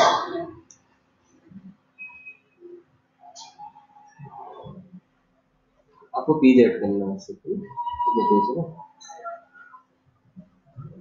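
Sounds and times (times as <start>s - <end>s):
faint scattered small sounds: 0.0s - 11.0s.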